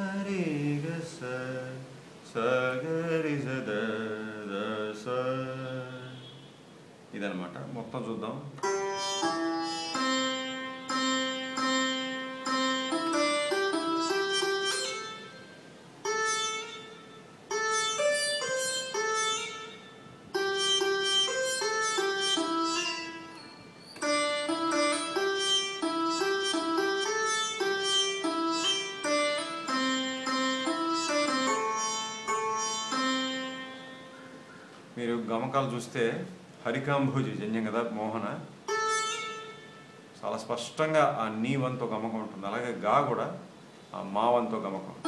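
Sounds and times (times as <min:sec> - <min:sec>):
keyboard melody in plucked-string voice: 0:08.6 - 0:34.6.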